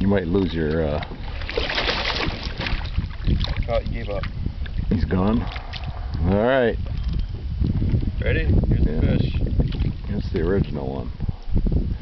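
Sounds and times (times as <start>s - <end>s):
wind rumble on microphone: 0.0s - 12.0s
fish splashing at surface: 1.3s - 3.7s.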